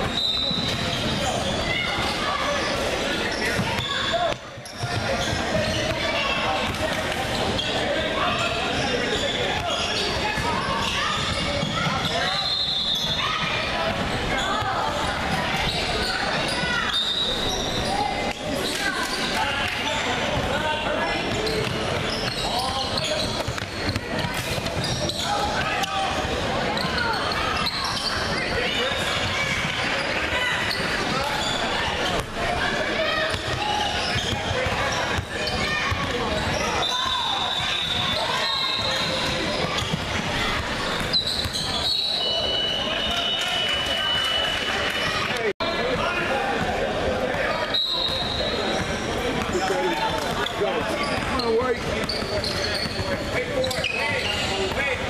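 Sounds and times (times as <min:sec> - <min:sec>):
voices shouting and chatter: 0:00.0 - 0:55.0.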